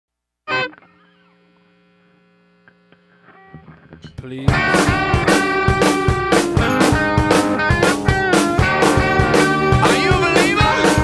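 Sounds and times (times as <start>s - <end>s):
low electrical hum: 0.6s - 4.2s
song: 4.5s - 11.0s.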